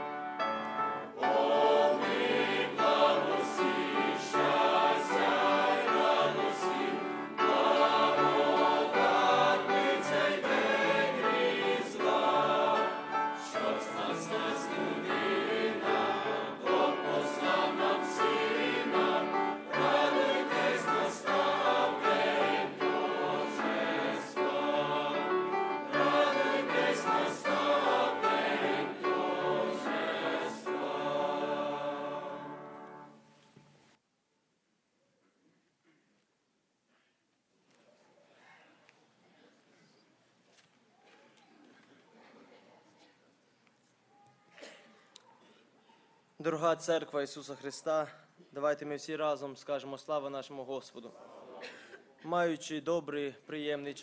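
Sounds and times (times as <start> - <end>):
choir singing in parts: 0.0 - 33.2.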